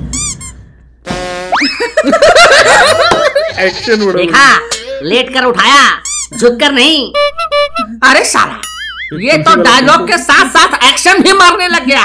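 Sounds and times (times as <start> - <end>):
bursts of laughter: 1.6 - 4.8.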